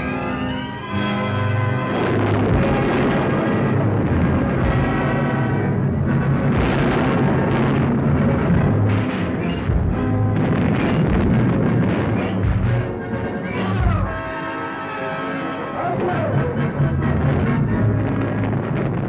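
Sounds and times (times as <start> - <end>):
orchestral music: 0.0 - 19.0
timpani: 0.0 - 19.0.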